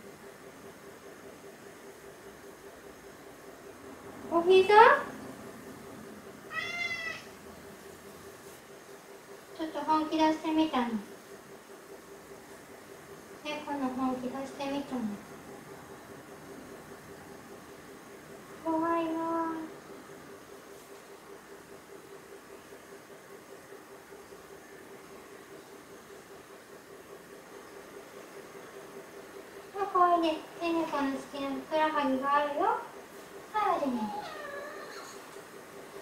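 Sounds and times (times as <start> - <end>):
cat meowing: 6.5 - 7.4, 34.0 - 35.2.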